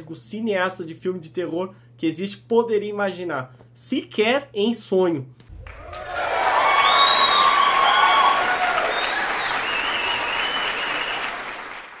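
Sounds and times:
crowd applauding: 5.5 - 12.0.

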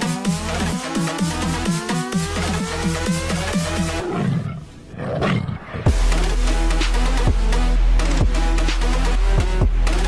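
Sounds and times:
heavy bass drop: 5.9 - 10.0.

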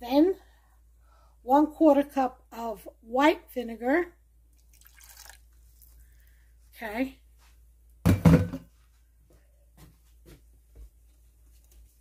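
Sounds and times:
kitchenware clunk on countertop: 8.1 - 8.7.

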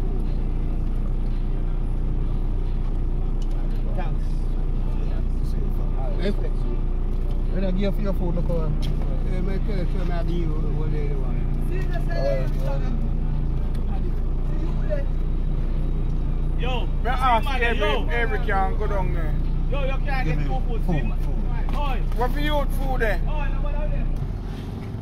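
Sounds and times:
faint voices talking: 0.0 - 24.2
car engine idling: 0.0 - 25.0.

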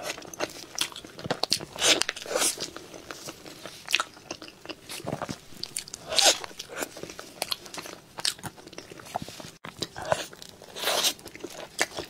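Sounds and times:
person chewing cake: 0.0 - 12.0.

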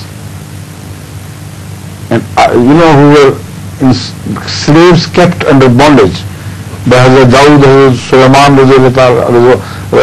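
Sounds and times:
faint low hum: 0.0 - 10.0
recording hiss: 0.0 - 10.0.

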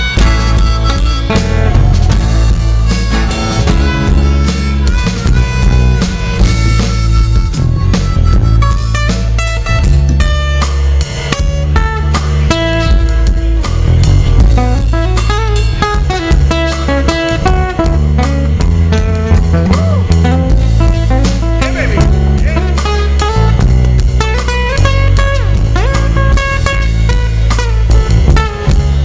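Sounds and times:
acoustic guitar picking: 0.0 - 29.0
drum kit: 0.0 - 29.0
low bass notes: 0.0 - 29.0.

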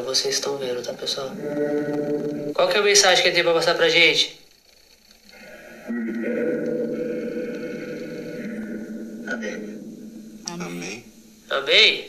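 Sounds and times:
buzzing tone with hiss from speaker: 0.0 - 12.0.

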